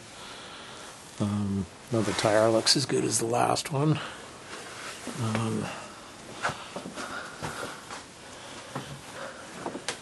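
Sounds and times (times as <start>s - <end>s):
footsteps: 6.3s - 10.0s.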